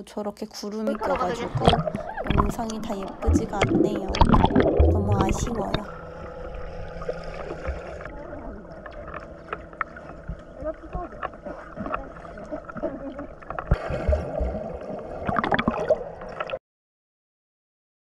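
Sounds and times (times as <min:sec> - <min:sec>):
muffled underwater bubbling: 0:00.6 - 0:16.6
swimmer splashing: 0:00.9 - 0:16.6.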